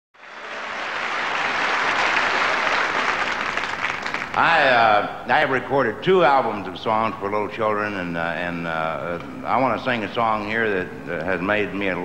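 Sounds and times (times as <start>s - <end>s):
audience applauding: 0.2s - 4.6s.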